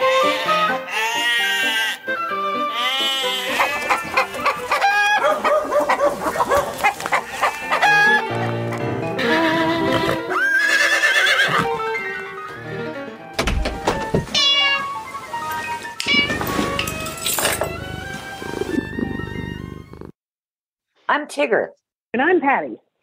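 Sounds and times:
wavering animal-like calls: 2.8s - 8.5s.

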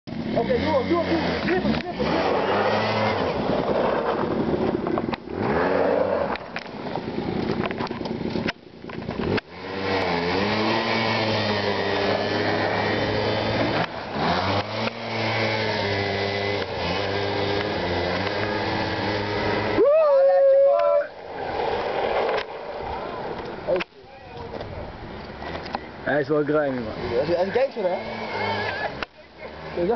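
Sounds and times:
quad bike engines revving: 0.1s - 29.9s.

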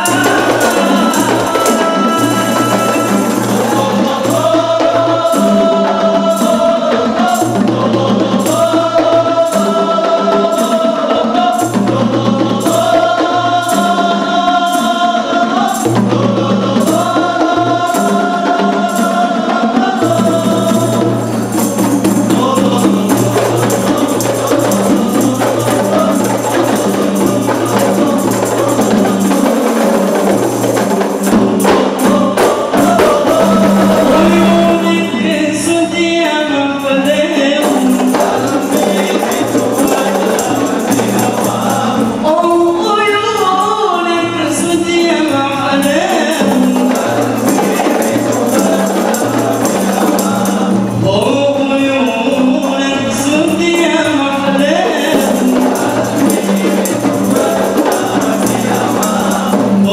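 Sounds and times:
jingle shake: 0.0s - 35.5s, 36.8s - 59.9s
hand-struck frame drums: 0.0s - 43.5s
voices singing a held melody: 0.0s - 59.9s.

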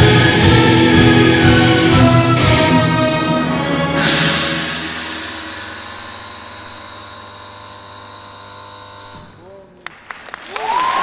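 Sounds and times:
orchestra and rock band chord: 0.0s - 7.4s
applause and cheering: 9.8s - 11.0s
audience shouts: 10.5s - 11.0s.

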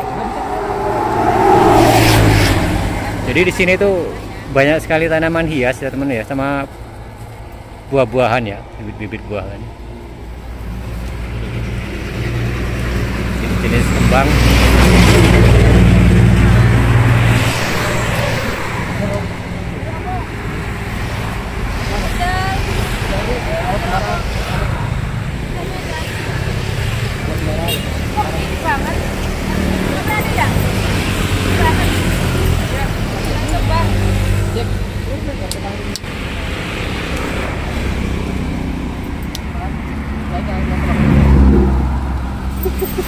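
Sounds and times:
indistinct voices talking: 0.0s - 6.7s, 13.3s - 43.0s
road traffic noise: 0.0s - 43.0s.

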